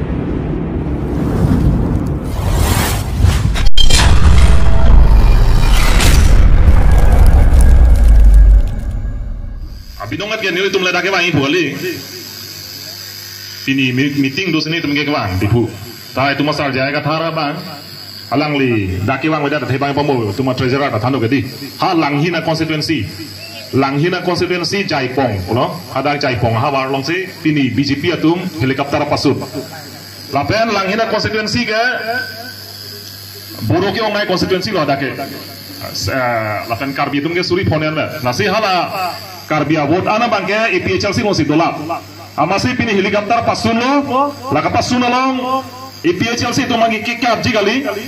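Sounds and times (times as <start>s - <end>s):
sweep: 0.9s - 10.0s
deep booming bass rumble: 3.2s - 10.0s
man speaking into a microphone: 33.6s - 48.0s.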